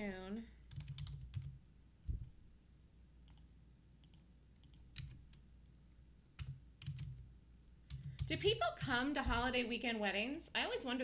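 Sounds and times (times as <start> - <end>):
computer keyboard keystrokes: 0.7 - 1.6, 3.3 - 5.4, 6.4 - 7.2, 7.9 - 8.5
soft low thumps: 2.0 - 2.4.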